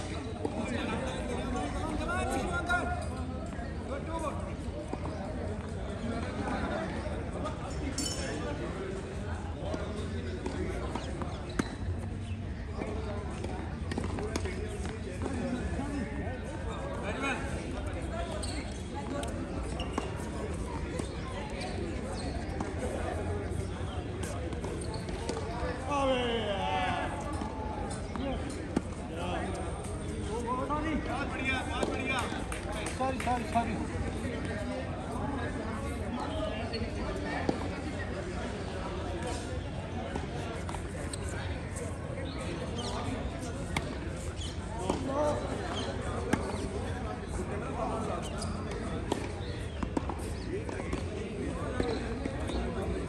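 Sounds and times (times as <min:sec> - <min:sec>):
people's voices: 0:00.0 - 0:53.0.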